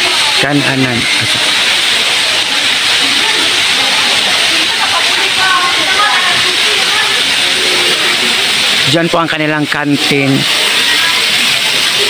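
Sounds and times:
loud steady hiss: 0.0s - 12.0s.

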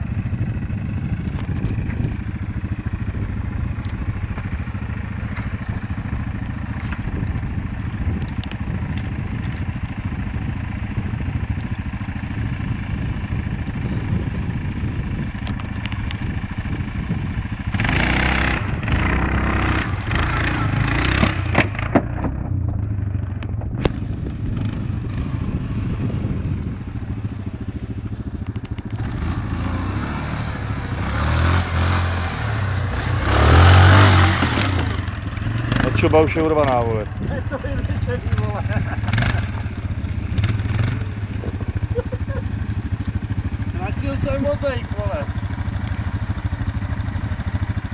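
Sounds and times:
quad bike engine revving: 0.0s - 47.9s.

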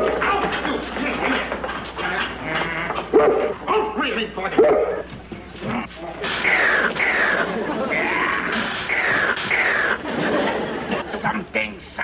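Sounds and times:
dog barking: 3.1s - 4.0s, 4.6s - 5.1s.

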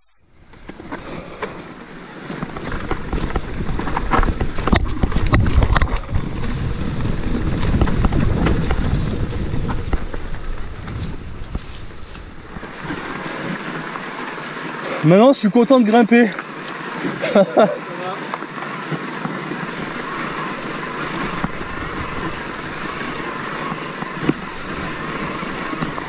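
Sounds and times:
bike rolling over dirt trail: 0.1s - 15.2s, 16.1s - 26.0s
knocks and rattles: 2.2s - 6.6s, 7.6s - 11.9s
wind noise on microphone: 2.4s - 13.2s.

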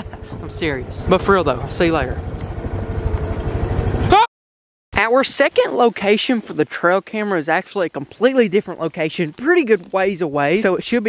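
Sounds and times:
small engine idling: 0.0s - 4.2s.

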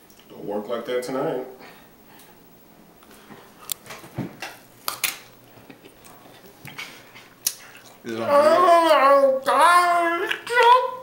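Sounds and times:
playing card clicking and crinkling: 4.8s - 5.9s.

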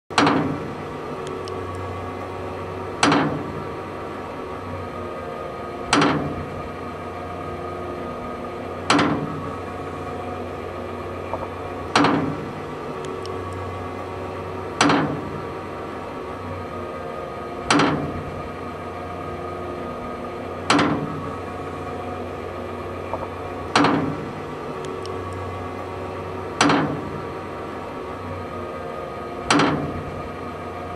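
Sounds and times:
steady mechanical hum: 0.1s - 30.9s.

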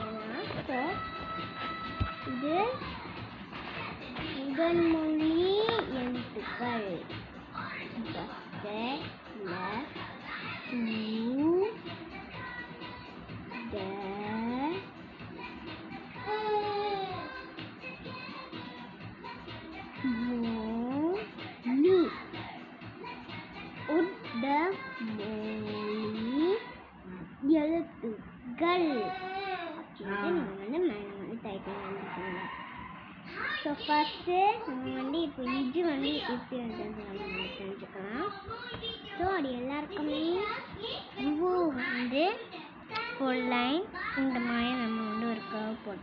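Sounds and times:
child singing wordlessly: 0.0s - 26.8s, 33.5s - 46.0s.

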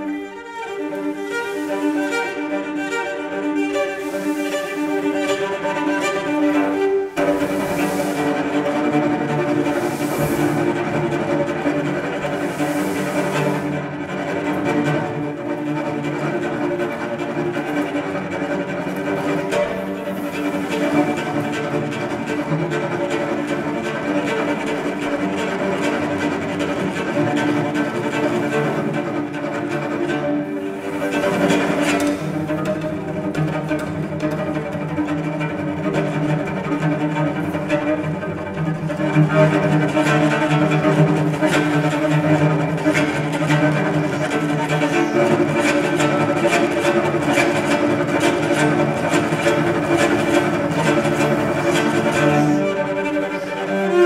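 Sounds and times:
bowed cello: 0.0s - 54.0s.

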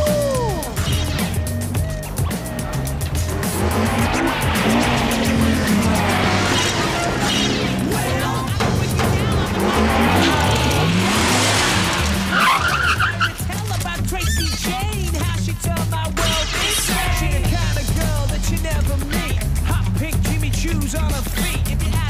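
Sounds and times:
background music: 0.0s - 22.0s
car engines passing: 1.8s - 13.9s.

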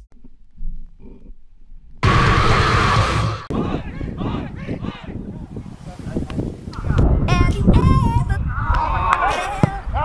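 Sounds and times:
loud rushing roar: 2.0s - 3.8s.

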